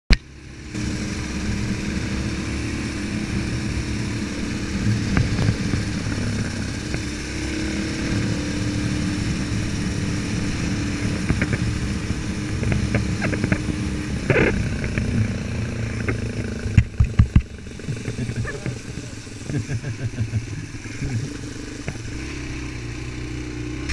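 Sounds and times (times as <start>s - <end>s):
motorcycle engine running: 0.1s - 23.9s.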